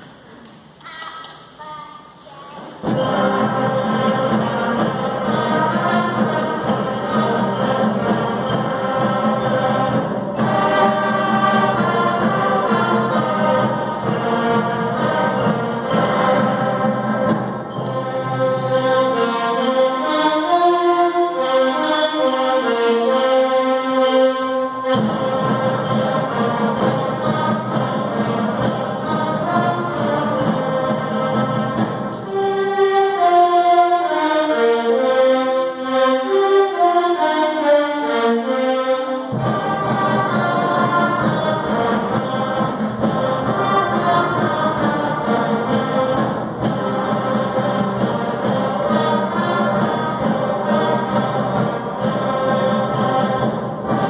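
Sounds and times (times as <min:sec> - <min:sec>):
concert band playing: 0:02.8 - 0:54.0.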